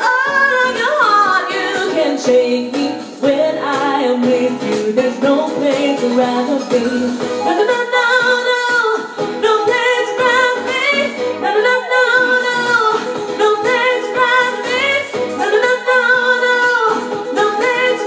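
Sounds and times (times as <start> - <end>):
musical backing: 0.0 - 18.0
woman singing into a microphone: 0.0 - 18.0.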